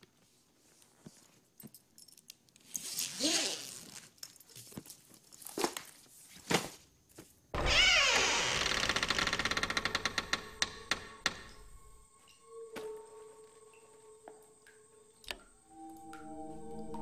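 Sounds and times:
soft rustling: 0:00.0 - 0:01.7.

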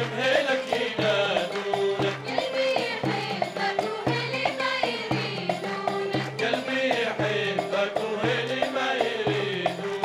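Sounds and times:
men's chorus singing folk song: 0:00.0 - 0:10.0
steady drum beat: 0:00.0 - 0:10.0.

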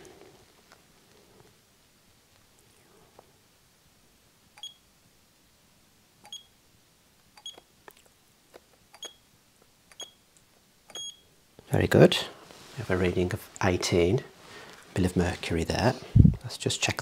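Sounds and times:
soft short high beeps: 0:10.9 - 0:11.3.

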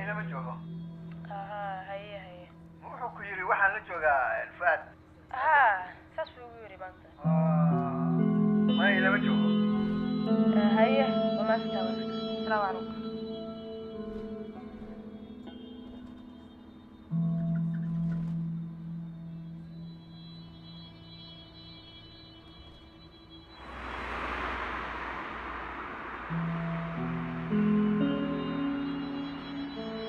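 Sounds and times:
ambient music of held notes: 0:07.1 - 0:30.0
rushing noise sweep: 0:23.4 - 0:30.0.

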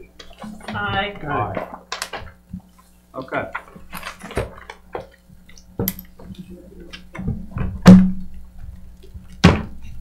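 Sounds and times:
knocks and thumps on a table: 0:07.2 - 0:08.2, 0:09.4 - 0:09.8.

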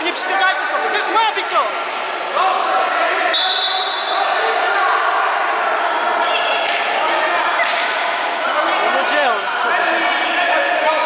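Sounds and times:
voices in sports hall: 0:00.0 - 0:11.0.

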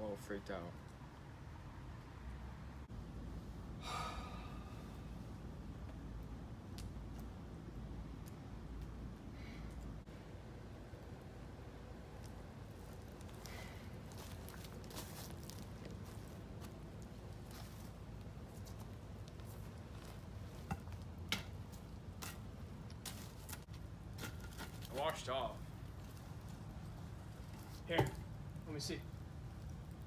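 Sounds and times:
fire low rumble: 0:00.0 - 0:30.0
wood fire pops and crackles: 0:05.6 - 0:30.0.

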